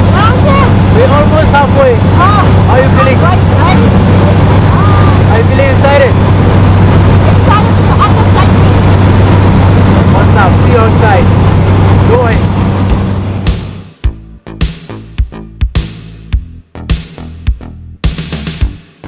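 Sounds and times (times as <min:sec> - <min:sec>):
plane engines droning: 0:00.0 - 0:14.1
rushing air: 0:00.0 - 0:14.2.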